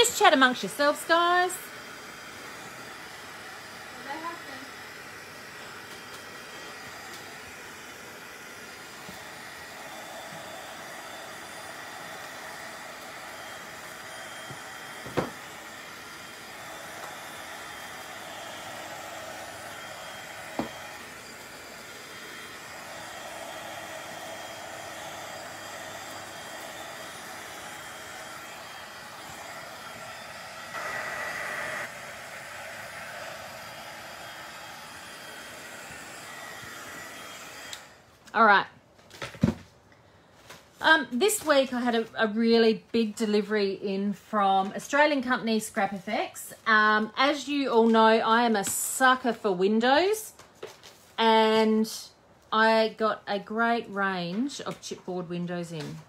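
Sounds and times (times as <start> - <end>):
heat gun blowing: 0.0 - 38.6, 44.3 - 50.0.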